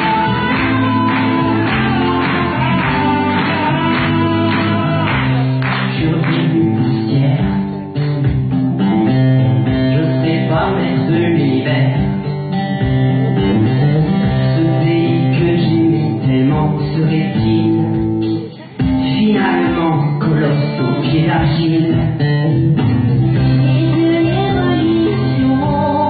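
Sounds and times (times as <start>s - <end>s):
person singing: 0.0s - 7.7s, 9.0s - 12.3s, 13.3s - 26.0s
guitar music: 0.0s - 26.0s.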